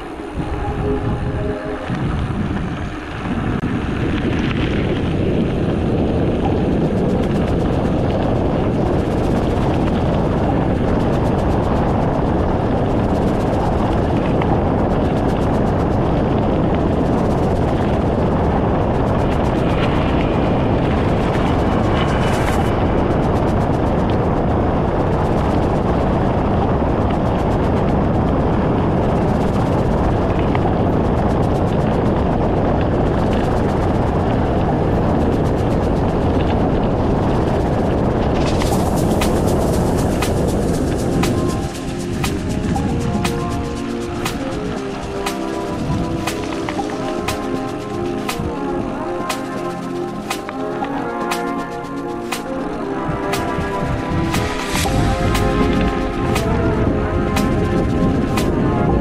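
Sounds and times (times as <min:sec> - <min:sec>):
wind buffeting microphone: 0:00.0 - 0:59.0
bike tyres rolling on gravel: 0:01.8 - 0:13.1.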